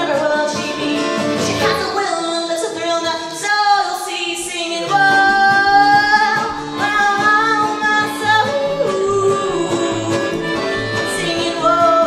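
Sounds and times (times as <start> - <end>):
strummed acoustic guitar: 0.0 - 12.0
woman singing: 0.0 - 12.0
accordion: 5.1 - 12.0.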